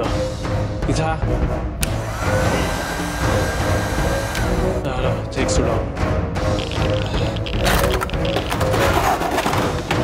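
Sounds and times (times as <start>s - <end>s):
heat gun fan whining: 1.8s - 4.8s
heat gun switch click: 4.2s - 4.6s.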